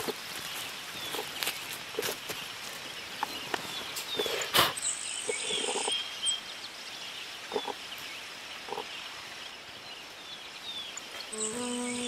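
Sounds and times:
rustles in leaf litter: 0.0s - 4.8s.

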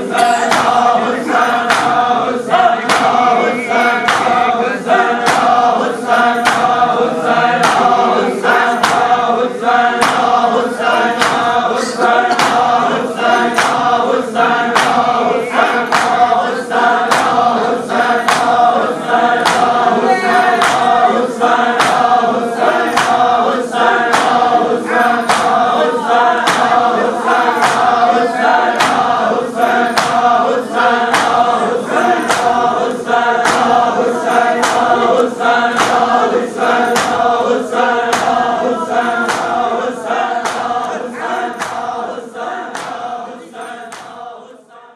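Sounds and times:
men chanting together: 0.0s - 44.9s
chest slapping in unison: 0.1s - 4.5s, 5.2s - 5.7s, 6.3s - 9.2s, 9.9s - 13.9s, 14.7s - 18.6s, 19.3s - 19.9s, 20.5s - 21.0s, 21.7s - 22.2s, 22.8s - 23.4s, 24.1s - 24.6s, 25.2s - 26.9s, 27.5s - 28.0s, 28.7s - 29.2s, 29.8s - 30.3s, 31.0s - 32.7s, 33.4s - 37.4s, 38.1s - 39.8s, 40.4s - 42.0s, 42.7s - 43.1s, 43.9s - 44.2s.

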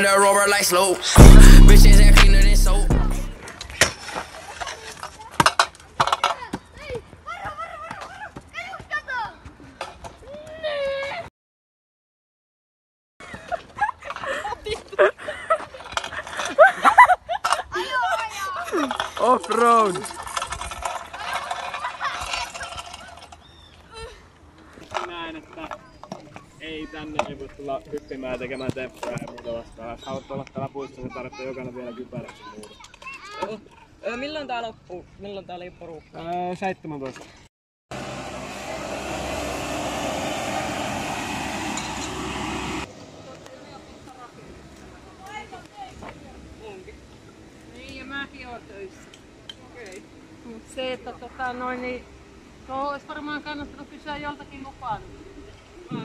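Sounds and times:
street sweeper engine: 37.9s - 43.1s.

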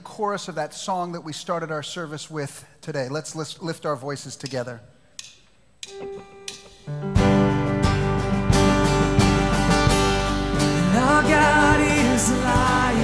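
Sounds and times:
live worship band playing: 5.9s - 13.0s.

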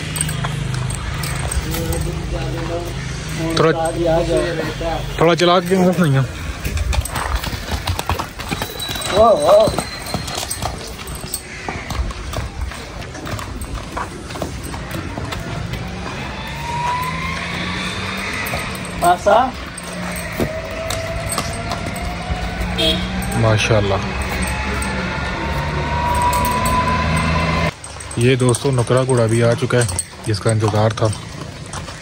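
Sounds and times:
horse hooves on dirt: 0.0s - 32.0s.

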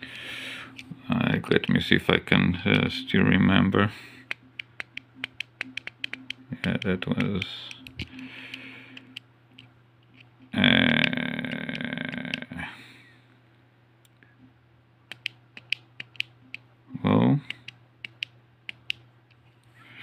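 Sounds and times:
keypad buttons clicking: 4.3s - 9.7s, 15.1s - 16.6s, 17.5s - 19.0s
voice-like sound: 10.6s - 12.8s.

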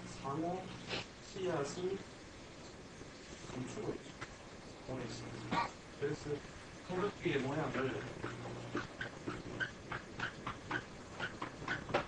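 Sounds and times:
marker squeaking on board: 8.2s - 12.0s.

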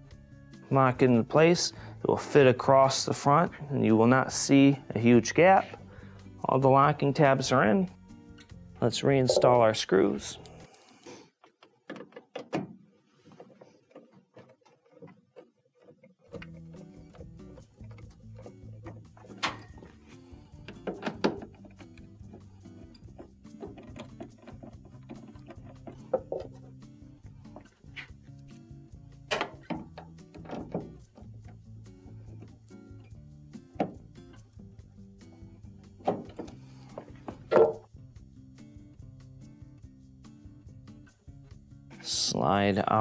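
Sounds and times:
background music: 0.0s - 11.2s, 16.3s - 43.0s
clicks and knocks on plastic panels: 11.5s - 12.8s, 20.7s - 21.6s.

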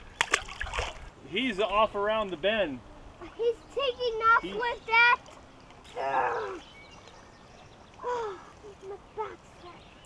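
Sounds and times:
child groaning: 5.9s - 6.6s, 8.0s - 8.6s.

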